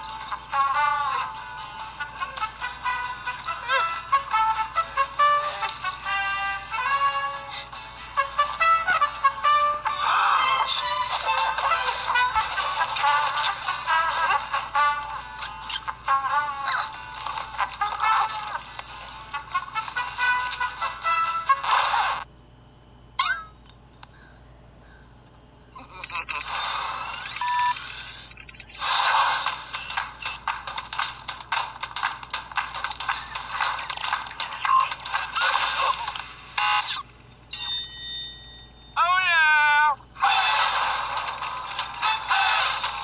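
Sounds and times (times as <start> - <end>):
cartoon sound effects: 23.2 - 23.6, 40.2 - 41.2.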